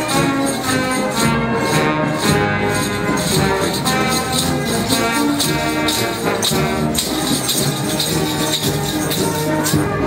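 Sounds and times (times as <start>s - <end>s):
marching brass band playing: 0.0s - 10.0s
tambourine jingles: 0.0s - 10.0s.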